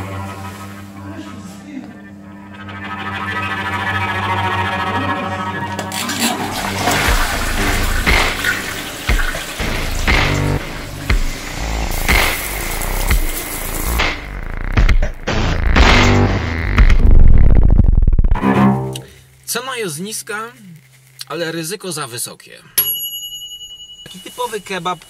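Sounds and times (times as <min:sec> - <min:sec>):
background music: 0:02.1 - 0:17.1
toilet flushing: 0:04.3 - 0:14.2
water rushing into bowl: 0:05.8 - 0:14.3.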